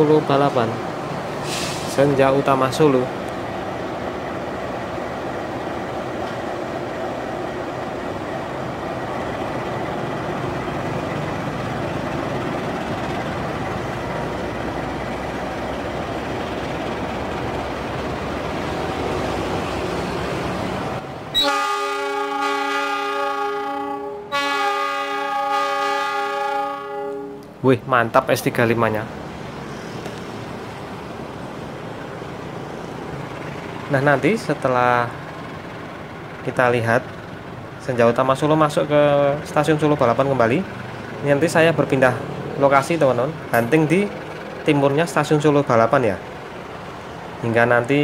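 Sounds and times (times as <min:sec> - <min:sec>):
locomotive engine and wheel rumble: 0:00.0 - 0:48.0
locomotive horn blast: 0:21.3 - 0:27.5.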